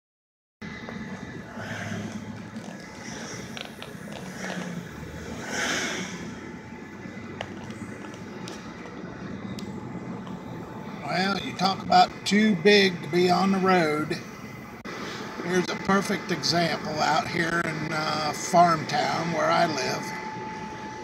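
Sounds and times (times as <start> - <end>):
car engine hum: 0.6 - 21.0
tyre and road noise: 0.6 - 21.0.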